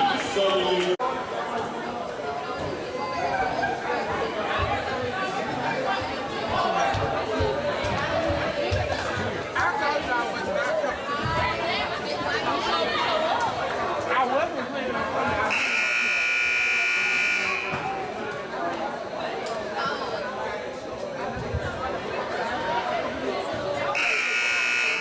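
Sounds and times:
chatter of voices in a hall: 0.0s - 25.0s
scoreboard buzzer harsh tone: 15.5s - 18.0s, 24.0s - 25.0s.

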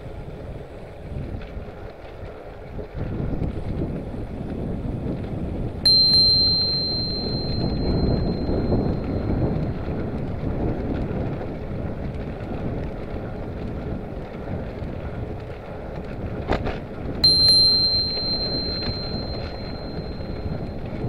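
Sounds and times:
wind rumble on microphone: 0.0s - 21.0s
bicycle bell ringing: 5.9s - 9.7s, 17.2s - 21.0s.

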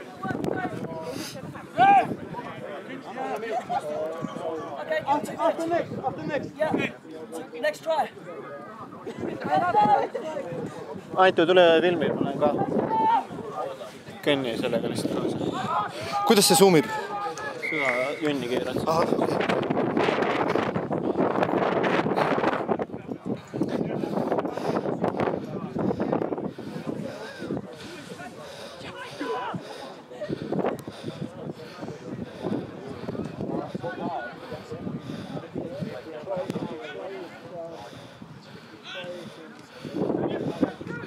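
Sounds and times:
wind buffeting microphone: 0.0s - 2.8s, 3.7s - 7.0s, 9.0s - 17.0s, 18.2s - 36.9s, 37.5s - 41.0s
voices calling and shouting: 0.0s - 41.0s.

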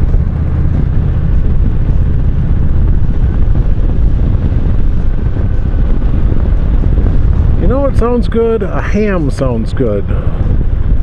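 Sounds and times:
motorcycle engine rumble: 0.0s - 11.0s
wind buffeting on microphone: 0.0s - 11.0s.

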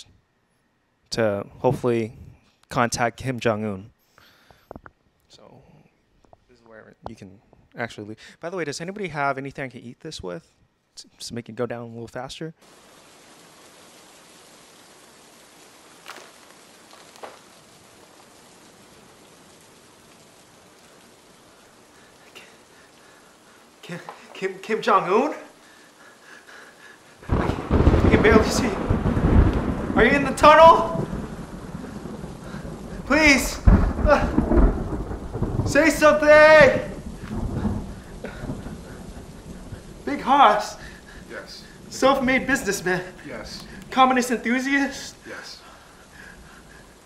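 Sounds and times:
steady hiss: 12.6s - 47.0s
steady rain: 12.6s - 47.0s
low rumble of thunder: 27.2s - 47.0s.

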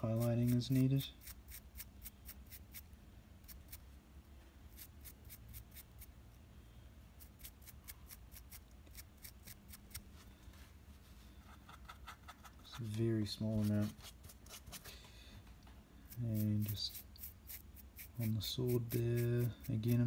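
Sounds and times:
dry brush scratching plastic: 11.4s - 15.0s, 16.1s - 20.0s.

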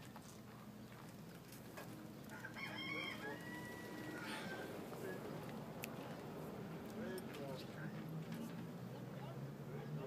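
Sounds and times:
rooster crowing: 2.3s - 4.8s.

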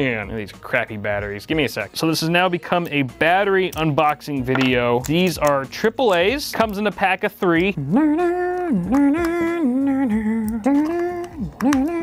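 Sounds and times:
man humming: 7.8s - 12.0s.

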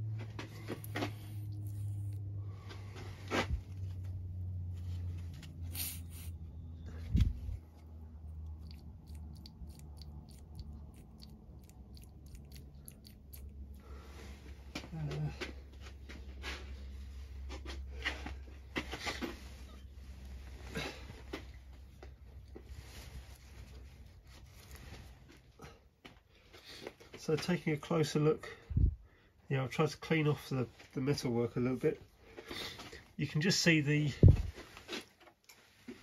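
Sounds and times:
low steady hum: 0.0s - 26.4s.

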